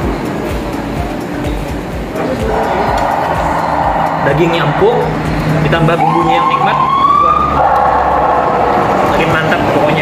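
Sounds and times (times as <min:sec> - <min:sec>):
passing vehicle engine: 0:00.0 - 0:10.0
road rumble: 0:00.0 - 0:10.0.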